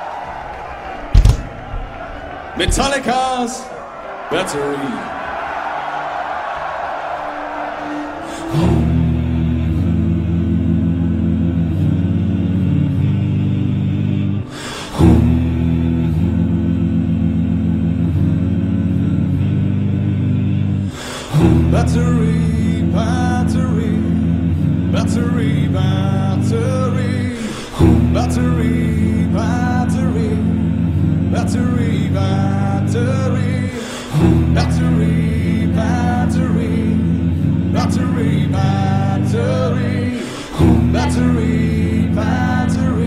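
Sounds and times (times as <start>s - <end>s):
drum thump: 1.1s - 3.1s
men singing a cappella metal: 8.0s - 43.0s.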